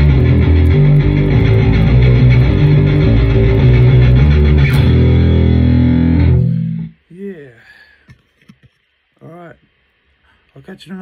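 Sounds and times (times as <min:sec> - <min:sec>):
distorted electric bass guitar: 0:00.0 - 0:07.0.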